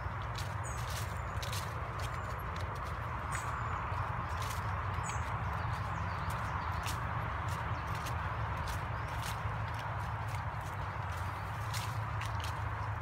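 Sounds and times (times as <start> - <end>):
footsteps on fallen leaves: 0.0 - 13.0.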